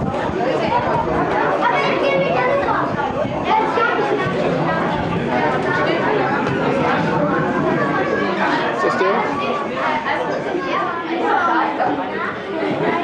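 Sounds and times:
many voices chattering: 0.0s - 13.0s.

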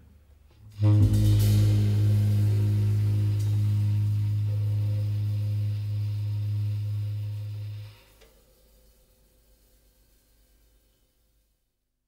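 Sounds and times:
low sustained jazz note: 0.7s - 8.3s
cymbal wash: 0.7s - 11.0s.

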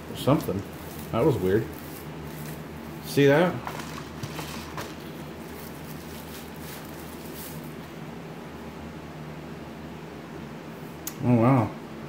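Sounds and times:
steady low hum: 0.0s - 12.0s
packaging rustles and taps: 3.6s - 7.6s.

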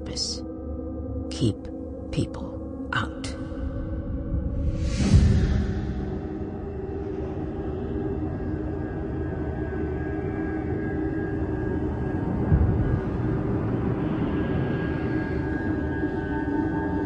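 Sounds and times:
low rumbling drone: 0.0s - 17.0s
deep hit: 4.2s - 7.0s.

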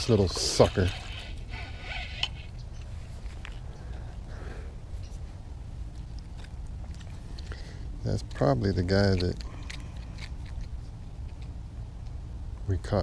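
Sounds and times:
fishing reel clicks and rustles: 0.0s - 3.7s, 6.3s - 10.7s.

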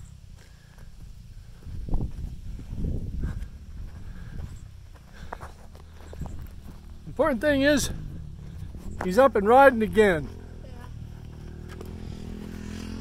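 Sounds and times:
footsteps on gravel: 0.3s - 12.5s
wind rumbling on microphone: 0.9s - 9.1s.

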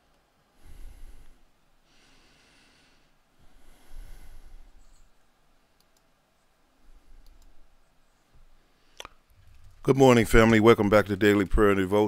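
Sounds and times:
faint sharp clicks: 5.8s - 6.1s, 7.2s - 7.6s, 9.0s - 9.6s.

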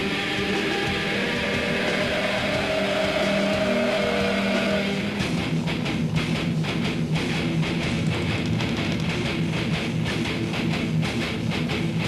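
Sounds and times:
distorted electric guitars chord: 0.0s - 12.0s.

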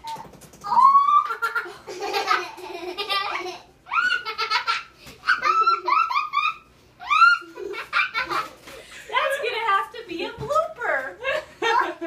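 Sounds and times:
young children laughing: 0.7s - 9.1s, 11.2s - 12.0s.

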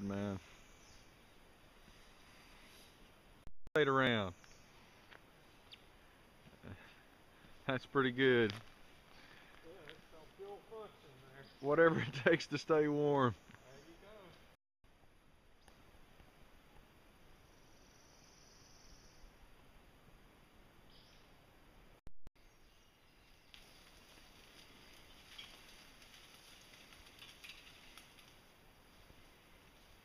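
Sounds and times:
leafy branches rustling and crackling: 22.9s - 30.0s.

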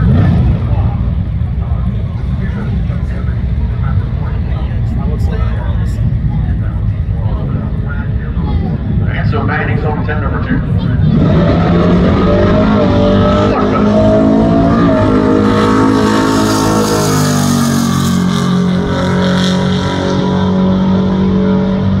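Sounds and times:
drag car engine revving: 0.0s - 8.3s, 8.9s - 22.0s.

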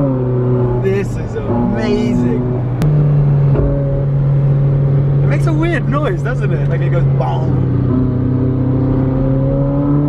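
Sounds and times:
car engine drone: 0.0s - 10.0s.

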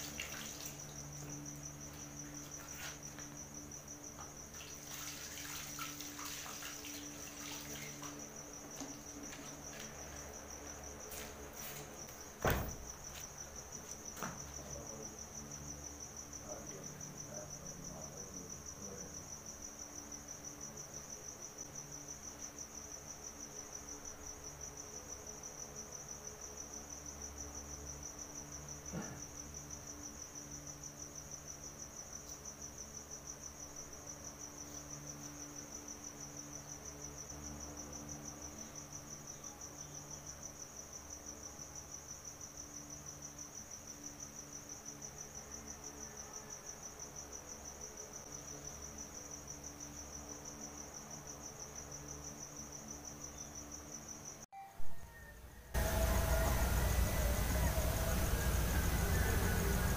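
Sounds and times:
crickets chirping: 0.0s - 59.9s
soft knock: 12.4s - 12.9s
faint low hum: 54.6s - 59.9s.

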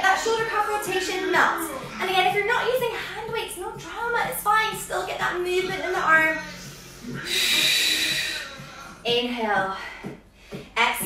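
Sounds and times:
woman breathing through mouth: 6.4s - 9.0s.

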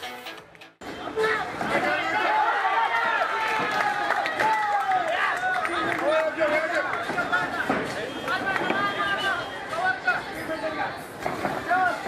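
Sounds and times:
people shouting: 1.0s - 5.6s.

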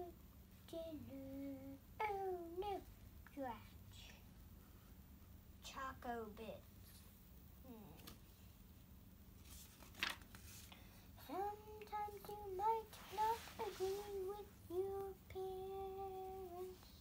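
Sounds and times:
child singing: 0.0s - 4.2s, 11.2s - 17.0s
papery rustle: 9.4s - 10.8s.

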